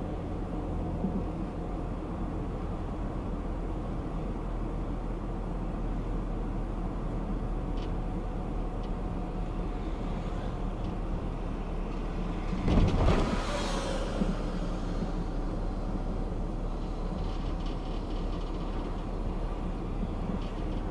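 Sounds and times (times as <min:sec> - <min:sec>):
car driving slowly interior: 0:00.0 - 0:20.9.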